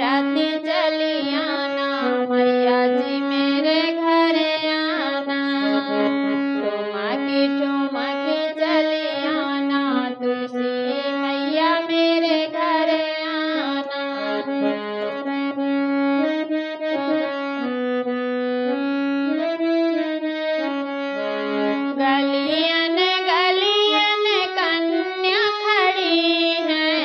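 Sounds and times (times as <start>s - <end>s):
woman singing: 0.0s - 15.2s, 21.9s - 27.0s
harmonium playing folk melody: 0.0s - 27.0s.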